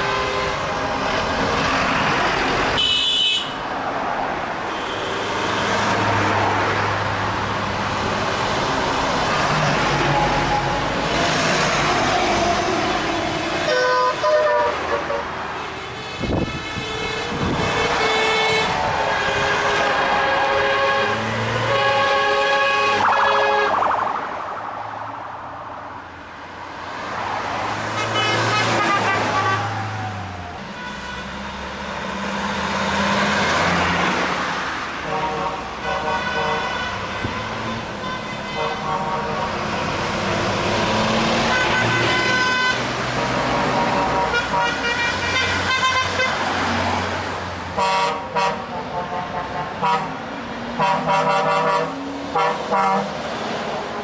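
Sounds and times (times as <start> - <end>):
truck horns blasting: 0.0 - 1.0, 2.7 - 3.7, 13.4 - 23.8, 27.9 - 29.8, 30.6 - 31.4, 35.0 - 40.2, 41.3 - 46.5, 47.7 - 50.2, 50.8 - 53.2
passing vehicles: 0.0 - 54.0
truck engines running: 0.0 - 54.0.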